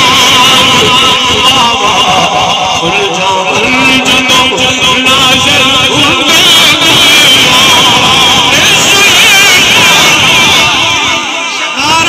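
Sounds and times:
man chanting over loudspeaker: 0.0 - 12.0.

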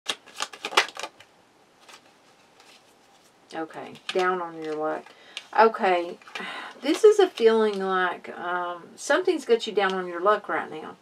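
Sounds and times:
cards snapping: 0.1 - 2.8, 3.9 - 5.5.

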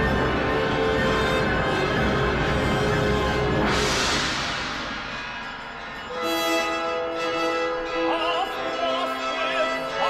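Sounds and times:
orchestra playing: 0.0 - 10.0
cymbal crash: 3.4 - 7.2.

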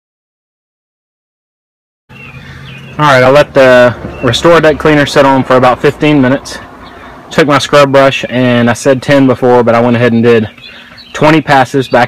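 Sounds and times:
short bird chirps: 10.5 - 11.2.

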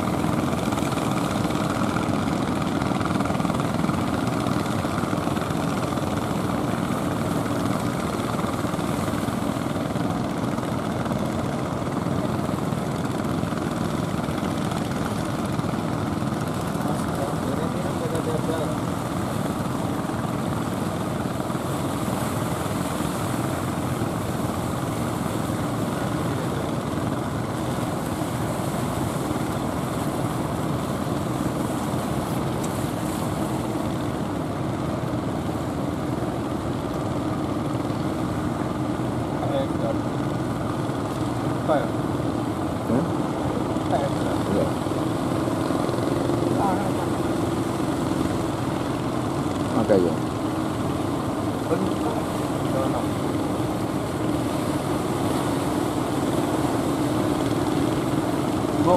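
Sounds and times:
boat engine drone: 0.0 - 58.9.

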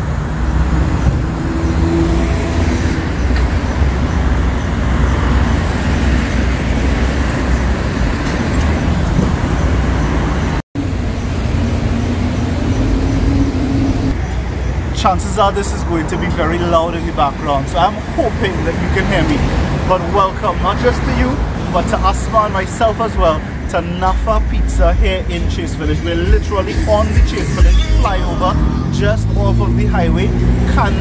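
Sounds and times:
low engine hum: 0.0 - 15.0, 23.4 - 31.0
highway traffic rumble: 0.0 - 31.0.

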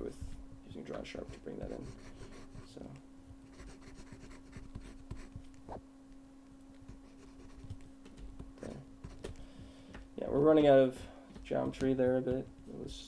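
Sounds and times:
low electrical hum: 0.0 - 13.0
stylus scratching and tapping tablet: 0.2 - 2.8, 3.4 - 5.8, 6.7 - 9.4, 11.3 - 13.0.

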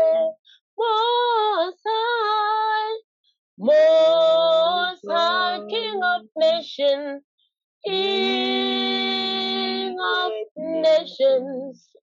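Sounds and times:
high voice singing unaccompanied: 3.6 - 7.2, 7.9 - 12.0.

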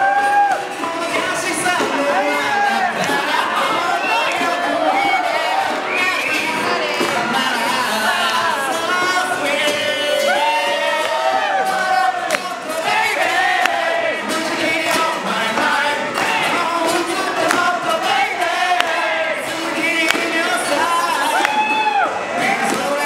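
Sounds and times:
acoustic guitar: 0.0 - 23.0
audience noise: 0.0 - 23.0
man singing into a microphone: 0.7 - 11.0, 11.6 - 21.8.

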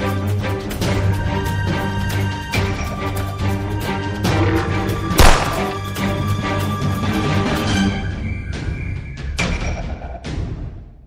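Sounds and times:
dramatic film music: 0.0 - 10.9
gunshot: 5.2 - 5.9.

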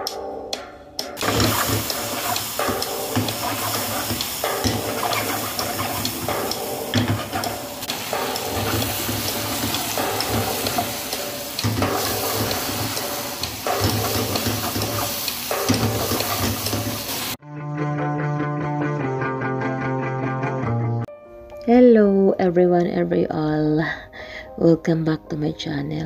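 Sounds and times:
food sizzling in a wok: 1.2 - 17.4.

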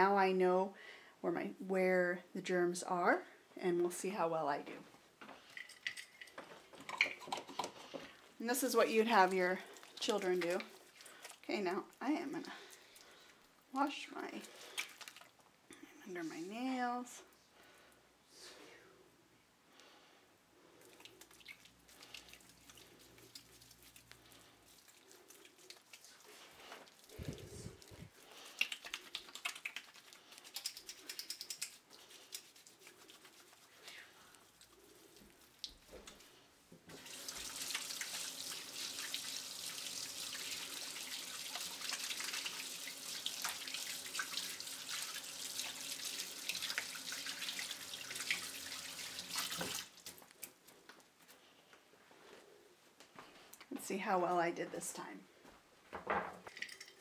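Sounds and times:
soapy hands scrubbing: 8.5 - 13.4, 14.2 - 15.4, 20.7 - 50.6
tap water running into steel sink: 36.9 - 49.9.

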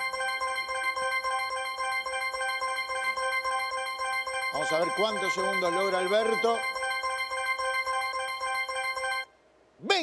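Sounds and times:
rapid bell-like electronic tones: 0.0 - 9.3.

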